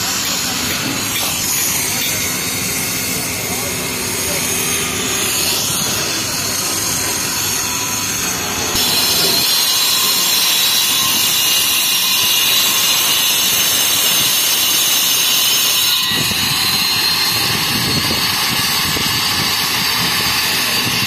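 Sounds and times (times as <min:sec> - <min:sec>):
angle grinder cutting concrete: 0:00.0 - 0:21.0.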